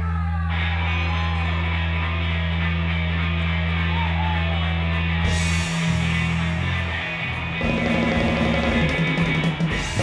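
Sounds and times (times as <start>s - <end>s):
electric guitar: 0.0s - 10.0s
upright bass: 0.0s - 10.0s
drum kit: 2.4s - 10.0s.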